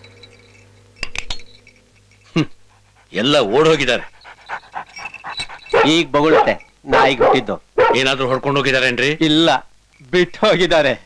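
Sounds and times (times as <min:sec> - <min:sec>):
dog whining: 0:02.3 - 0:08.0.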